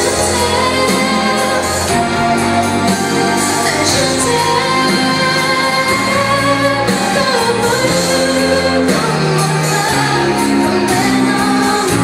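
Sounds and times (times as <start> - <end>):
instrumental chords and bass: 0.0 - 12.0
woman singing into microphone: 0.0 - 12.0.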